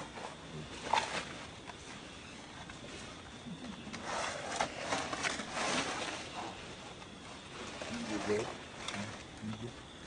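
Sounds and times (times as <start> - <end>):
steady outdoor hiss: 0.0 - 10.0.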